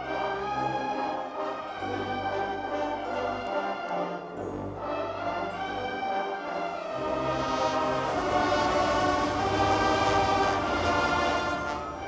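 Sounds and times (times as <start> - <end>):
wind band playing sustained chords: 0.0 - 12.0.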